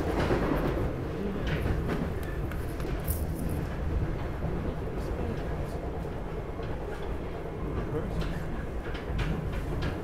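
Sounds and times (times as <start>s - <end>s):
train wheels rumbling on track: 0.0s - 10.0s.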